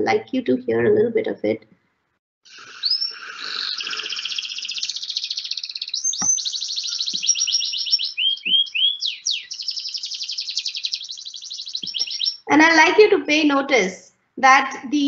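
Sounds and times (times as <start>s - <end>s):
canary singing trills: 2.5s - 13.7s.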